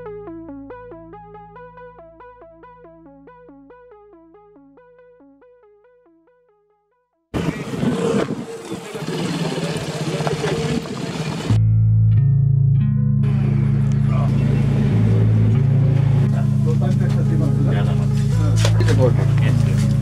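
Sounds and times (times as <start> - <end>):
music with deep bass line: 0.0 - 5.8, 9.8 - 20.0
motorcycle on gravel track: 7.4 - 11.6
voices: 7.4 - 11.6, 16.2 - 20.0.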